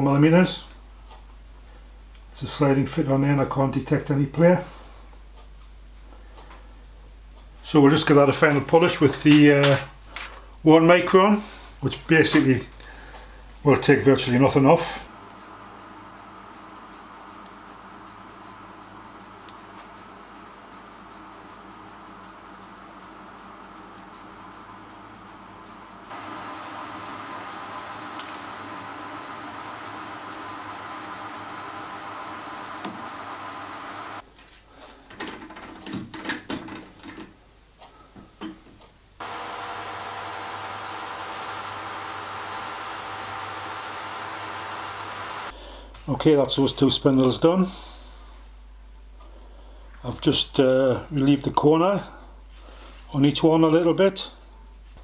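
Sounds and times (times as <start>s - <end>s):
lathe running: 15.1s - 34.2s, 39.2s - 45.5s.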